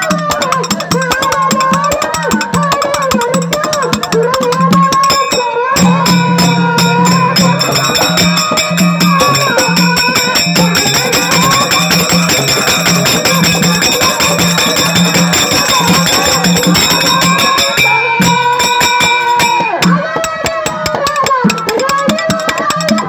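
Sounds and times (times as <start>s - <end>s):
barrel drum beating: 0.0s - 23.0s
metallic percussion ringing: 0.0s - 23.0s
person singing: 0.0s - 23.0s.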